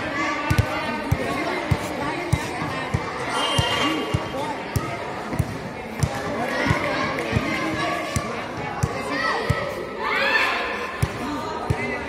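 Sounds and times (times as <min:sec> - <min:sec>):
girls chattering: 0:00.0 - 0:12.0
basketball bouncing on court: 0:00.4 - 0:09.7, 0:11.0 - 0:12.0.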